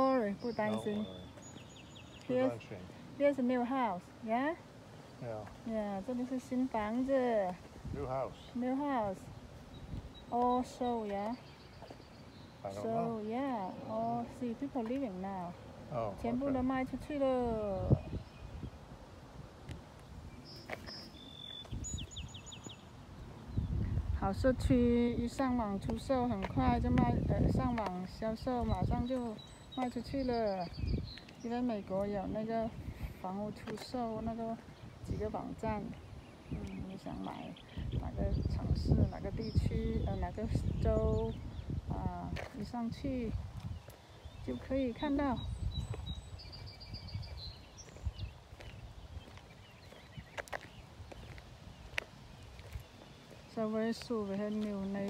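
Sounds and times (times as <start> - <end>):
low rumble of wind: 0.0 - 55.0
songbird singing: 0.0 - 55.0.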